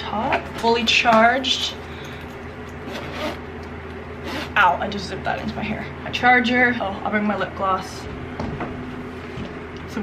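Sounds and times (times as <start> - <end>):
fabric zipper closing: 2.8 - 3.4, 4.2 - 4.6.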